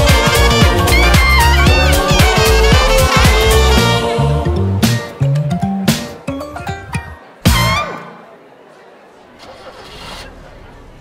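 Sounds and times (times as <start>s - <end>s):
murmur of voices: 0.0s - 11.0s
car engine starting: 9.3s - 11.0s.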